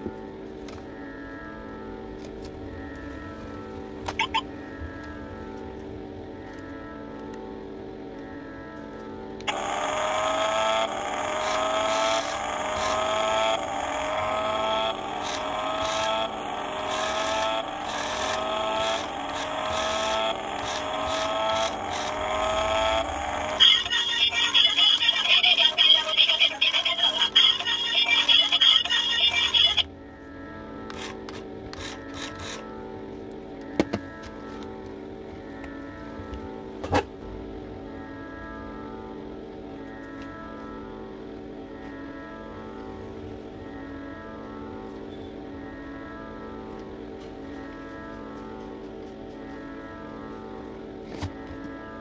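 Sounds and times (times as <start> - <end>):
background music: 0.0 - 9.5
toy speaker electronic sound effect: 4.1 - 4.5, 9.4 - 29.9, 30.9 - 32.6.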